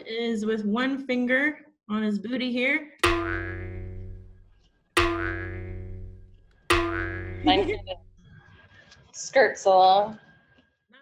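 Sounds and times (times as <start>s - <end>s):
cartoon boing sound effect: 3.0s - 4.4s, 5.0s - 8.1s.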